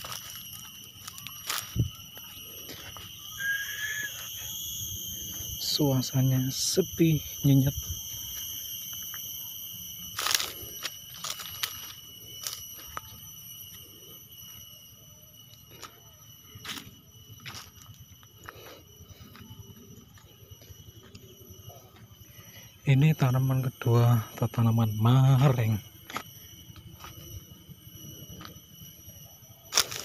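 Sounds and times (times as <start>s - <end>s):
insects trilling: 0.0s - 30.0s.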